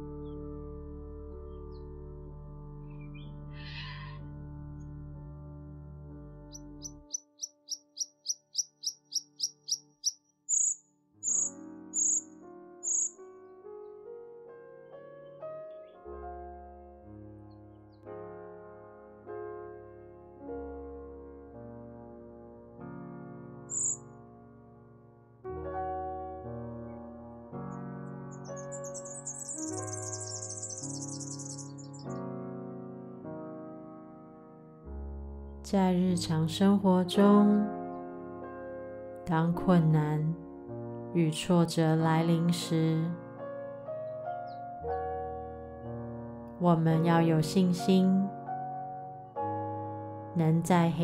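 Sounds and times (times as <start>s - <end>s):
soft sustained music: 0.0s - 51.0s
bird chirping and whistling: 7.1s - 12.2s, 12.8s - 13.1s, 23.7s - 24.0s, 28.6s - 32.0s
piano notes: 10.5s - 51.0s.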